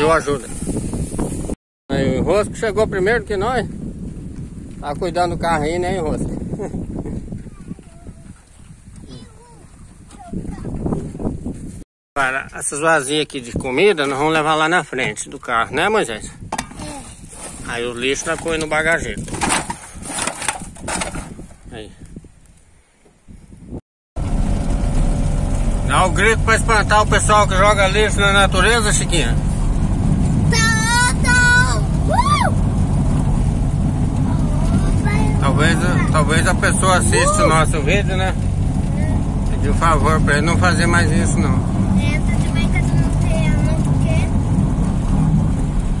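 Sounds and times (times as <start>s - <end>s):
plastic sack rustling and knocking: 16.5s - 21.6s
car engine and road rumble: 24.2s - 46.0s.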